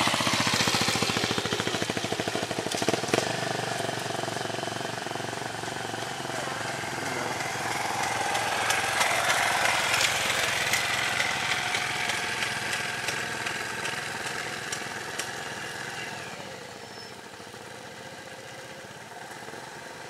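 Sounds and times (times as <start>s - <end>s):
small engine idling: 0.0s - 20.0s.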